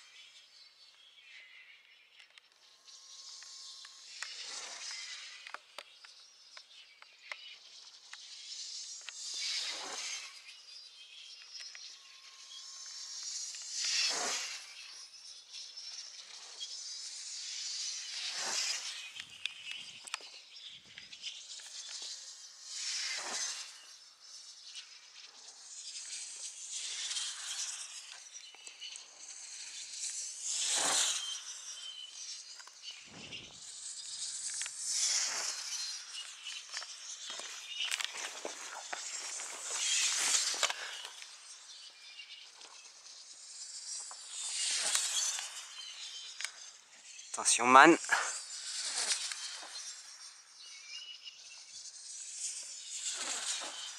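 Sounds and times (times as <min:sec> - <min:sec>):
gliders passing with rushing hiss: 0:03.2 - 0:06.6, 0:07.4 - 0:53.9.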